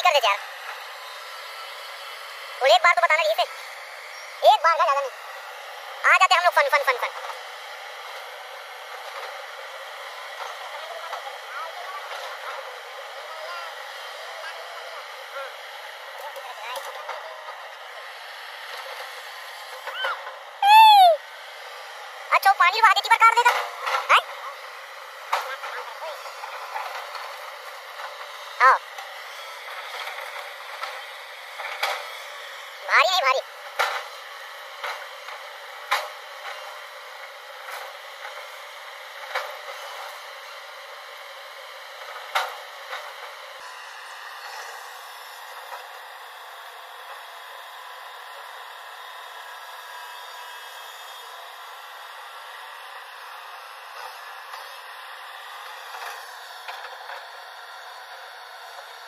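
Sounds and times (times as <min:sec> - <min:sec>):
excavator engine running: 0:00.0 - 0:59.0.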